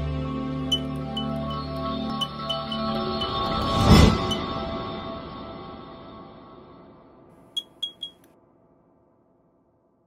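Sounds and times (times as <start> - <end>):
intro music: 0.0 - 4.6
short high electronic beeps: 0.7 - 3.4, 7.6 - 8.2.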